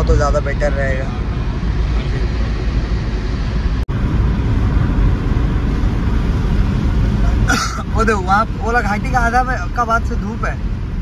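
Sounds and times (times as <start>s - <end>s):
car cabin road and engine noise: 0.0s - 11.0s.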